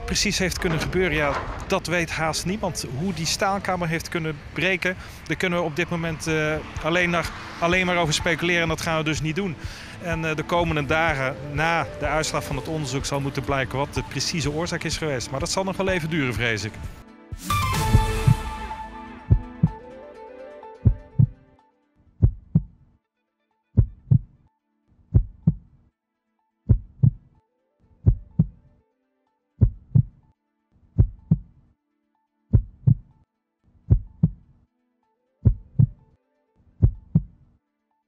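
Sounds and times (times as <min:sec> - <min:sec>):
low double thump: 0:19.3 - 0:19.8, 0:20.9 - 0:21.3.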